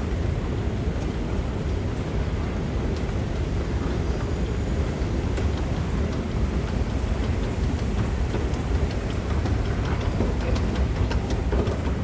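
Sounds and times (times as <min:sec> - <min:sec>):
escalator rumbling: 0:03.0 - 0:12.0.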